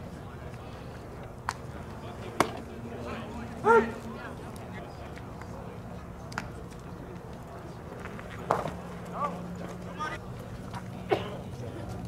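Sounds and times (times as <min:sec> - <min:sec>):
person shouting: 0:03.6 - 0:04.0.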